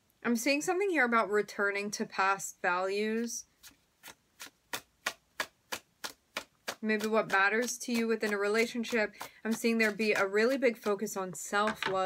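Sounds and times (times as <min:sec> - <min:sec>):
cards being shuffled: 0:03.6 - 0:11.0.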